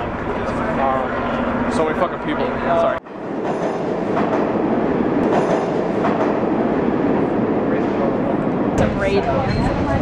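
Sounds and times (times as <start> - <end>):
subway train wheels rumbling: 0.0 - 10.0.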